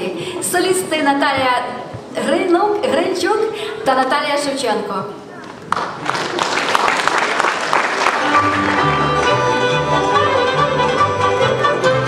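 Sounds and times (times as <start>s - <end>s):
audience applause: 5.6s - 9.7s
fiddles playing: 8.1s - 12.0s
double bass line: 8.2s - 12.0s.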